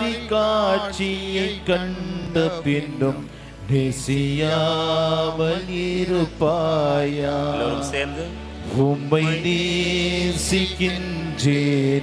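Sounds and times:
low steady drone: 0:00.0 - 0:12.0
man chanting through microphone: 0:00.0 - 0:12.0.

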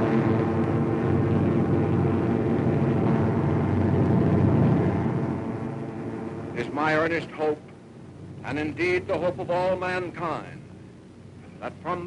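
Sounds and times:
low engine-like drone: 0:00.0 - 0:12.0.

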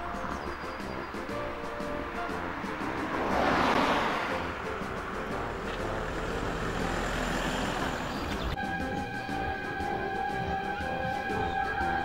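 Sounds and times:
music: 0:00.0 - 0:12.0
traffic noise: 0:00.0 - 0:12.0
car passing by: 0:01.4 - 0:08.6.

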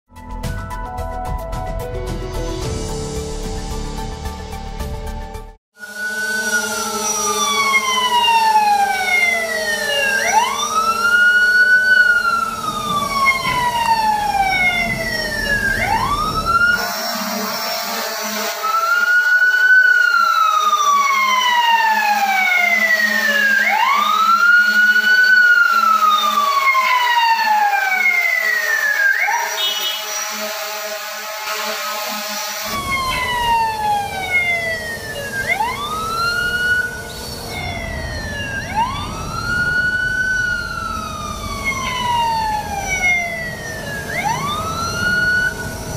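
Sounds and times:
fainter second siren wail: 0:05.7 - 0:45.9
siren wailing: 0:05.7 - 0:45.9.

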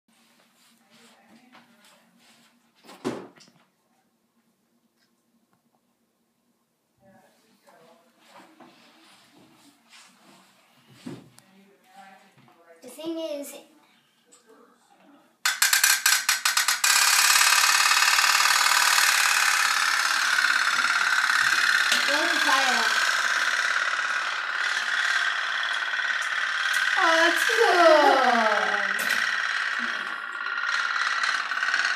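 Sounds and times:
toy steam boat buzzing hum: 0:15.5 - 0:31.9.

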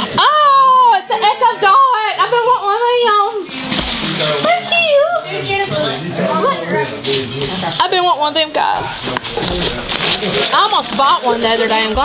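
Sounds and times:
tissue paper rustling: 0:06.3 - 0:12.0.

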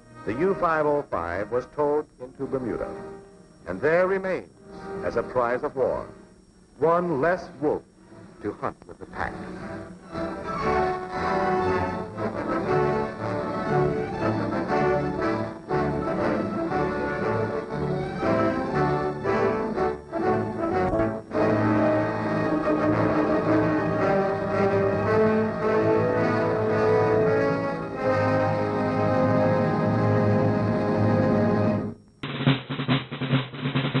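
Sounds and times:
orchestral music: 0:09.5 - 0:31.9
music with sharp drum hits: 0:20.7 - 0:21.9, 0:32.2 - 0:34.0
drum roll and timpani: 0:31.6 - 0:34.0.

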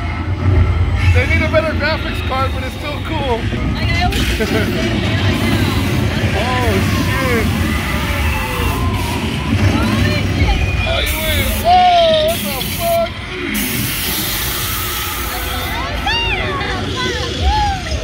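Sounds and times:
indistinct voices: 0:00.0 - 0:18.0
vehicle rumbling: 0:00.0 - 0:18.0.

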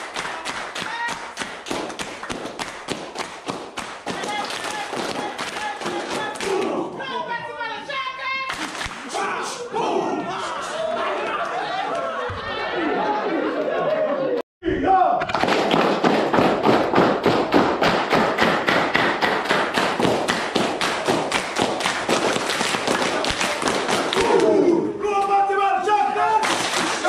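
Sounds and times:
group clapping in unison: 0:00.0 - 0:06.9, 0:08.5 - 0:09.2, 0:15.2 - 0:24.7, 0:26.3 - 0:27.0
men chanting and calling out: 0:09.0 - 0:11.3.

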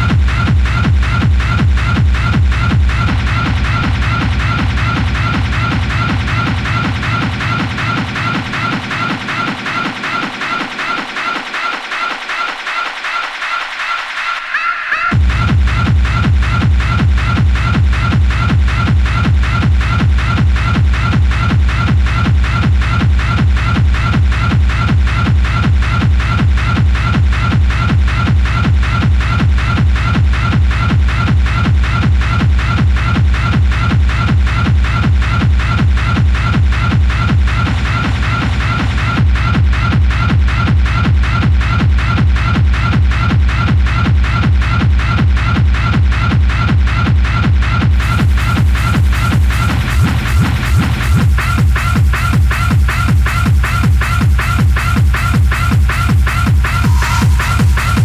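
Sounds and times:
fast four-on-the-floor kick drum: 0:00.0 - 0:13.6, 0:15.1 - 0:58.0
hard techno dj mix: 0:00.0 - 0:58.0.

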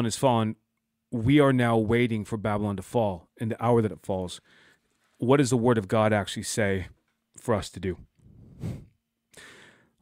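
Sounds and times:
man speaking: 0:01.2 - 0:04.4, 0:05.2 - 0:08.1
man breathing into microphone: 0:08.2 - 0:10.0.

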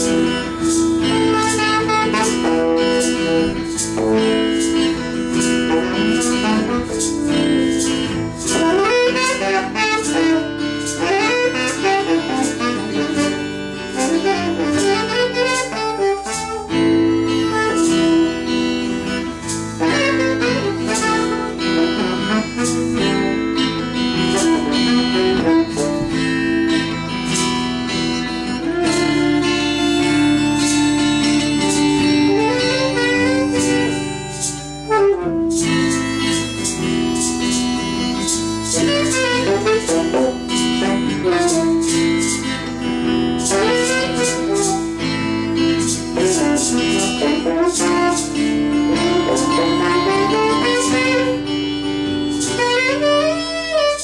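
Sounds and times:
acoustic guitar strumming: 0:00.0 - 0:54.0
harmonica playing: 0:00.0 - 0:54.0
tenor saxophone: 0:00.0 - 0:54.0.

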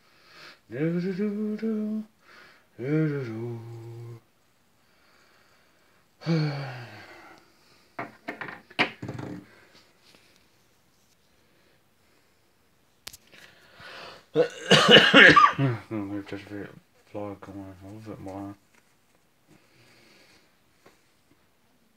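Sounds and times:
man singing wordless notes: 0:00.7 - 0:04.3.

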